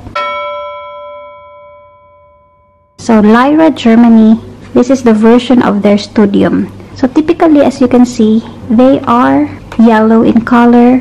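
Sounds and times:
bell-like chime: 0:00.1 - 0:03.0.

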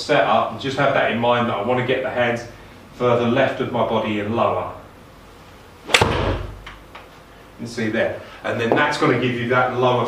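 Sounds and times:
low thud: 0:05.9 - 0:06.6
golf club striking ball: 0:05.9 - 0:06.8.

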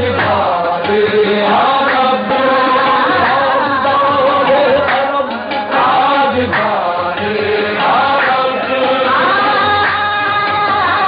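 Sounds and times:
man singing into a microphone: 0:00.0 - 0:11.0
qawwali music: 0:00.0 - 0:11.0.

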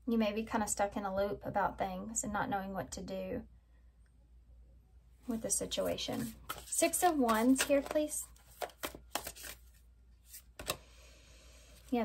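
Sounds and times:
card flicks and taps: 0:08.6 - 0:09.6, 0:10.6 - 0:10.8.

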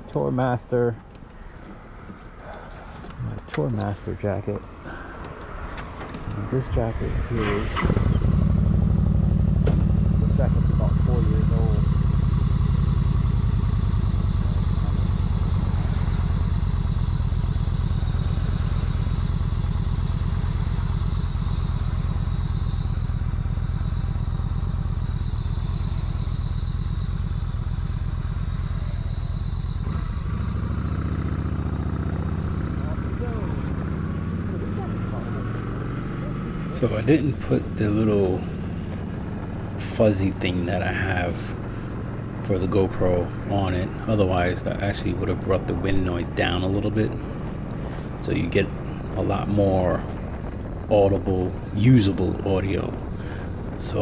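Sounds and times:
motorcycle engine running: 0:06.3 - 0:54.0
wind noise on microphone: 0:47.2 - 0:54.0.

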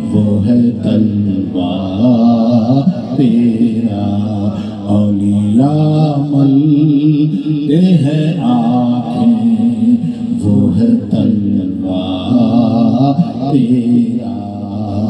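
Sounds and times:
low drone: 0:00.0 - 0:15.0
person chanting: 0:00.0 - 0:15.0.

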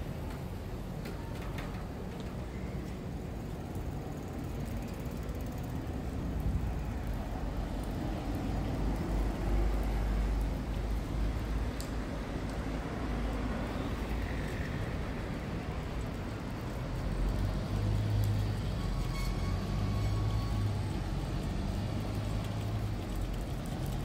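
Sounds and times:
road traffic rumble: 0:00.0 - 0:24.0.

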